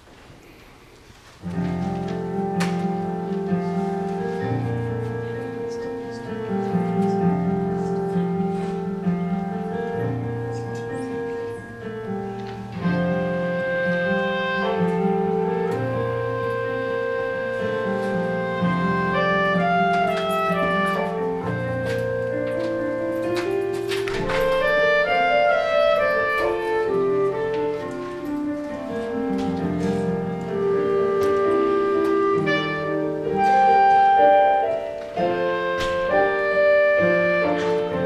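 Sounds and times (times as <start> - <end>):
piano accompaniment: 0.0 - 38.0
solo clarinet melody: 1.4 - 38.0.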